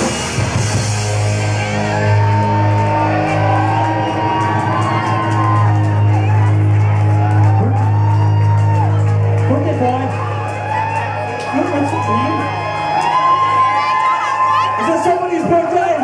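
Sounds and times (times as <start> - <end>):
distorted electric guitars sustaining: 0.0 - 13.4
audience whooping and shouting: 0.0 - 16.0.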